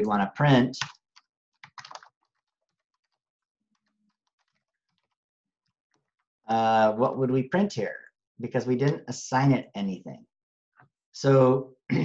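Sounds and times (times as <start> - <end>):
computer keyboard typing: 0.8 - 5.2.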